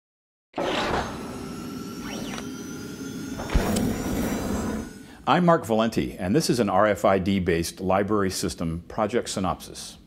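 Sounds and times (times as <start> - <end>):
synthetic sound bed with pitch sweep: 0.7 - 5.1.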